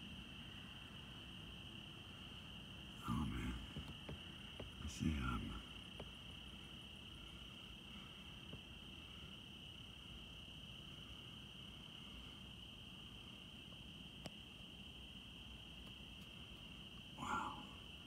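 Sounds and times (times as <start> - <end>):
cricket chorus trilling: 0.0 - 18.0.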